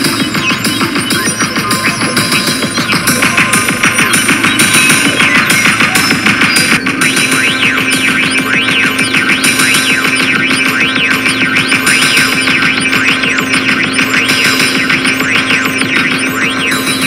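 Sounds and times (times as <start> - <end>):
drum machine beat: 0.0 - 17.0
sweeping synth tones: 0.0 - 17.0
synthesizer tones: 0.0 - 17.0.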